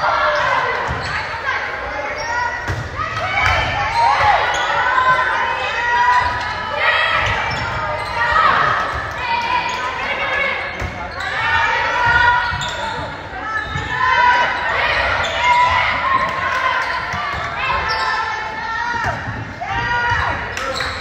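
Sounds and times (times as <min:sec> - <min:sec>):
voices echoing in a hall: 0:00.0 - 0:21.0
sneakers squeaking on hardwood: 0:12.0 - 0:18.4.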